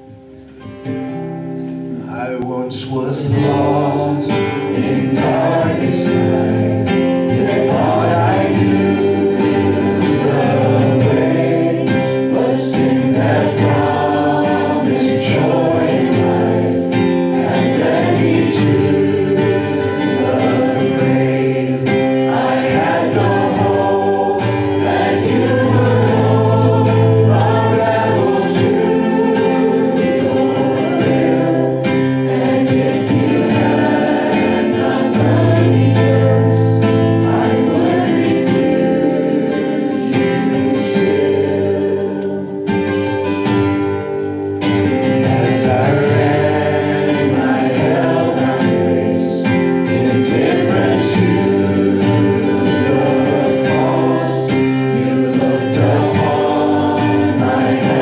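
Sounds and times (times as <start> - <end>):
congregation singing a hymn: 0.0 - 58.0
strummed acoustic guitar: 0.0 - 58.0.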